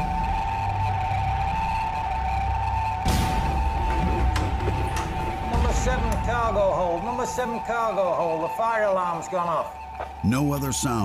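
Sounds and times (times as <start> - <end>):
dark soundtrack music: 0.0 - 11.0
fire alarm steady high tone: 0.0 - 11.0.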